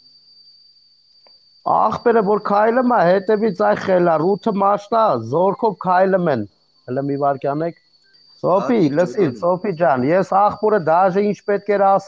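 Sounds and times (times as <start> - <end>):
faint high-pitched tone: 0.0 - 12.0
man speaking: 1.7 - 7.7, 8.4 - 12.0.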